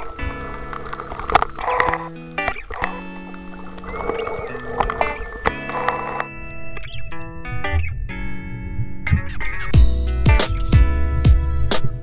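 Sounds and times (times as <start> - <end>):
held pitched notes: 0.0 - 12.0
sharp percussive hits: 9.8 - 11.9.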